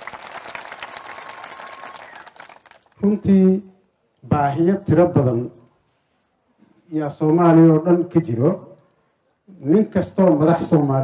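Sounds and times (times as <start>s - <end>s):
audience applauding: 0.0s - 3.0s.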